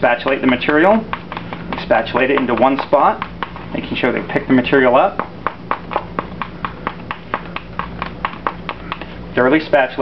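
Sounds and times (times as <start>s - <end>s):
spatula slapping paste in bowl: 0.0s - 9.6s.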